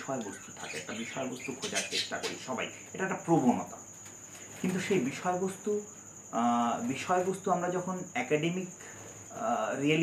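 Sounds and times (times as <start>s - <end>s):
man talking: 0.0s - 3.8s.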